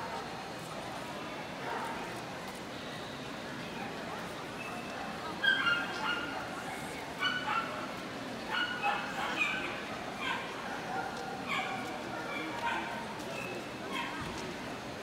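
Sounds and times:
murmur of voices: 0.0s - 15.0s
small dogs yipping: 5.4s - 6.4s, 7.2s - 7.8s, 8.5s - 10.6s.

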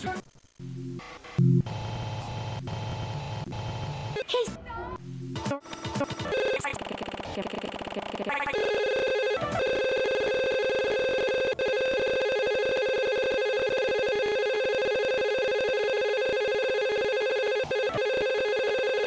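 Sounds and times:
electronic trilling tone: 6.2s - 19.0s.

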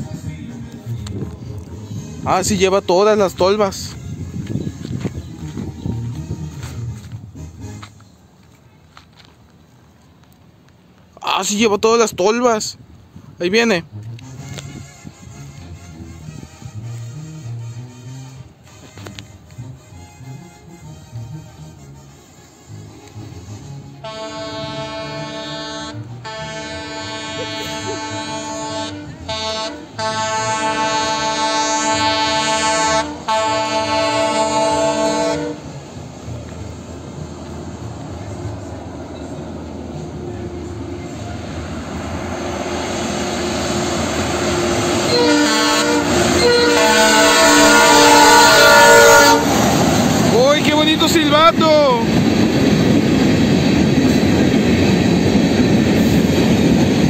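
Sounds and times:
train cars rolling on rails: 0.0s - 57.0s
multi-tone air horn blasts: 3.5s - 7.9s, 14.2s - 35.7s, 44.6s - 49.6s.

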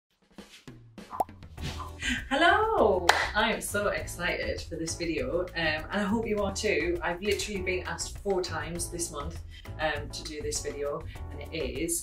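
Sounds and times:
intro music: 1.1s - 9.0s.

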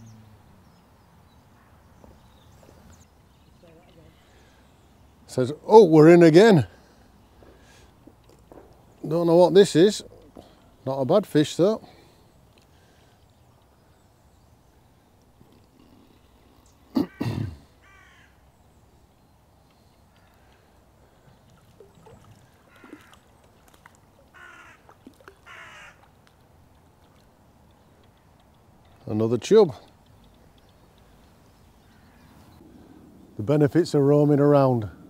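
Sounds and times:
crow cawing: 17.0s - 18.4s, 22.7s - 23.2s, 24.3s - 26.1s, 31.8s - 32.4s.

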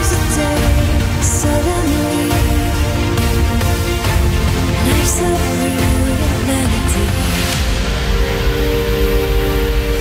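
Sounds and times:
bass: 0.0s - 10.0s
held synth chord: 0.0s - 10.0s.

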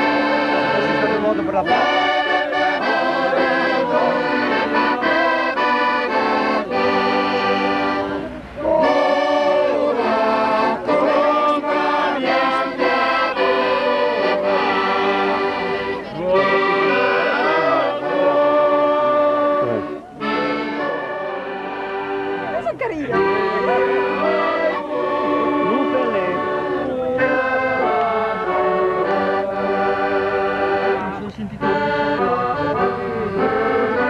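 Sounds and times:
group singing: 0.0s - 31.1s
accordion chords: 0.0s - 34.0s.

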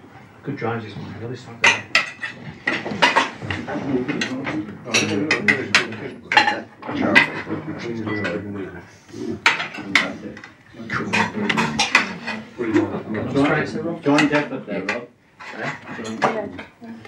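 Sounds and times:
cutlery and plates clinking: 1.6s - 8.5s, 9.4s - 16.8s.

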